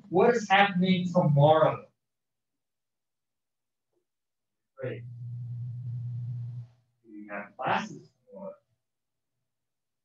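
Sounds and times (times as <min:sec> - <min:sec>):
low steady hum: 0:04.8 - 0:06.8.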